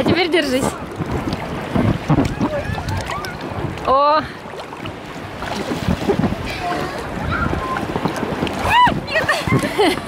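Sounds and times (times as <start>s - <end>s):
sea water sloshing and lapping: 0.0s - 10.0s
wind buffeting microphone: 0.0s - 10.0s.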